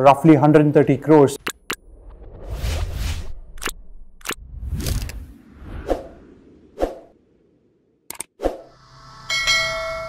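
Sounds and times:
mouse clicks: 0:01.4 - 0:01.8
bright bell ding: 0:09.3 - 0:10.0.

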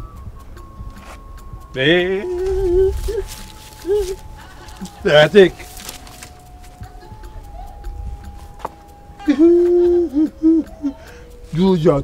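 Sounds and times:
man hooting: 0:02.1 - 0:04.3, 0:09.2 - 0:11.2
low-pitched vocal sound: 0:02.2 - 0:04.2.

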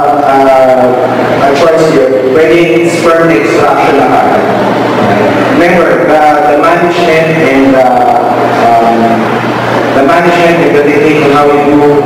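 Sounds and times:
man lecturing in a hall: 0:00.0 - 0:04.6, 0:05.5 - 0:12.0.

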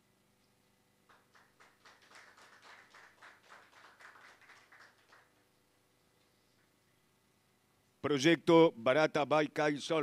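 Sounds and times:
small group clapping: 0:01.1 - 0:05.6.

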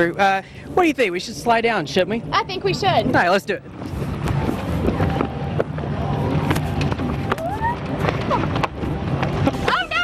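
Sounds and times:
fairground noise: 0:00.0 - 0:10.0.

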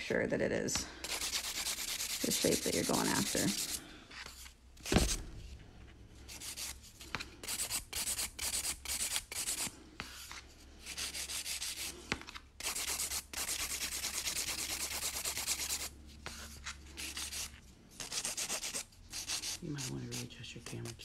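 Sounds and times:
nail file rubbing on nail: 0:01.0 - 0:04.5, 0:06.3 - 0:06.8, 0:07.4 - 0:11.9, 0:12.6 - 0:21.0.

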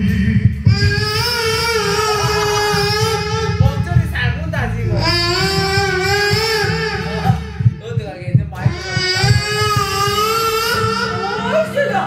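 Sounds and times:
backing track with low beat: 0:00.0 - 0:12.0.

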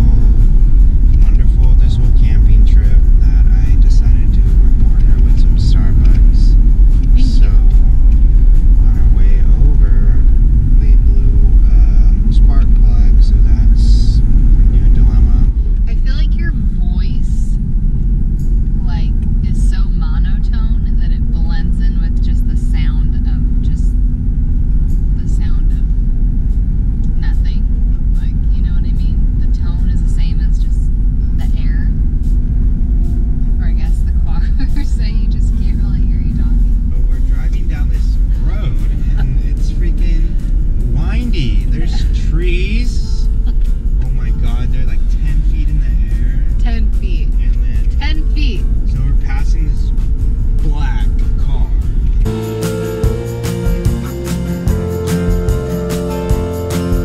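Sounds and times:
vehicle cabin road rumble: 0:00.0 - 0:57.0
voices talking: 0:01.1 - 0:08.0, 0:08.8 - 0:17.6, 0:28.2 - 0:32.0, 0:33.6 - 0:56.6.

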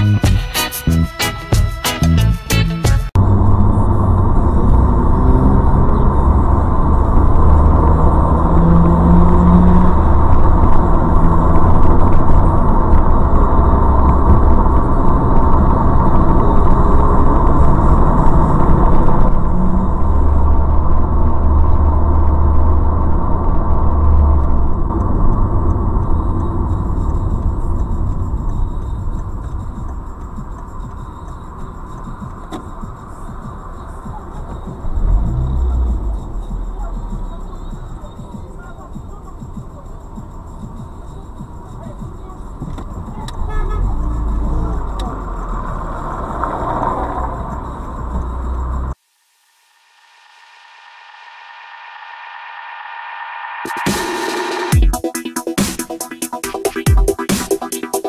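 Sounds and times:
vehicle engine and road rumble: 0:03.1 - 0:49.0.

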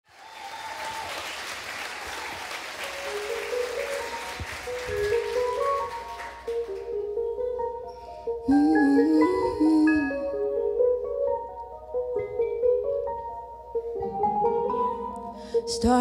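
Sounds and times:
audience applause: 0:00.0 - 0:07.0
soft held instrumental notes: 0:03.0 - 0:16.0.

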